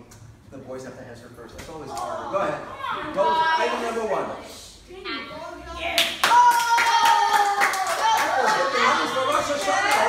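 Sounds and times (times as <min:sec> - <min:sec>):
group hand clapping: 0:06.0 - 0:10.0.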